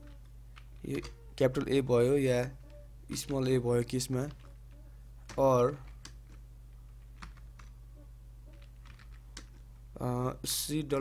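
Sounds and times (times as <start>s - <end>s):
steady low hum: 0.0s - 11.0s
computer keyboard keystrokes: 5.2s - 6.4s, 7.2s - 7.7s, 8.5s - 9.6s.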